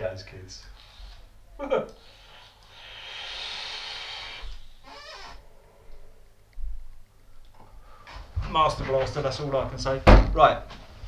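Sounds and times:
short rough breath: 2.0s - 4.8s
hissing vape draw: 2.0s - 5.3s.

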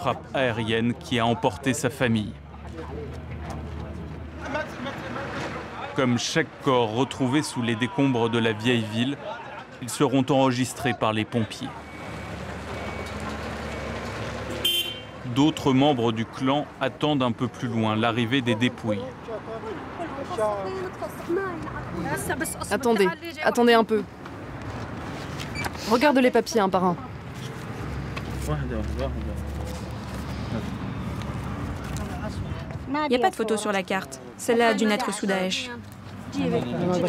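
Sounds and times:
street and engine noise: 0.0s - 37.0s
high-pitched horn beep: 14.6s - 15.1s.

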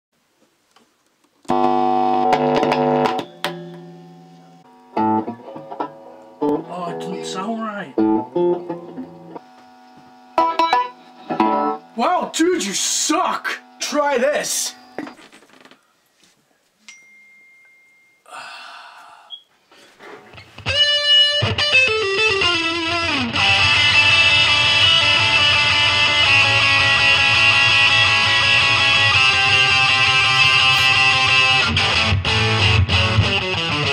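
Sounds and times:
electric guitar chords strummed: 1.5s - 12.0s, 20.6s - 33.9s.

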